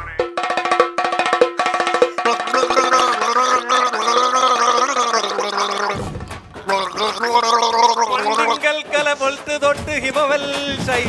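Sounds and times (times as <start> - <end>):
man singing wordless tune: 0.0 - 0.4, 1.8 - 11.0.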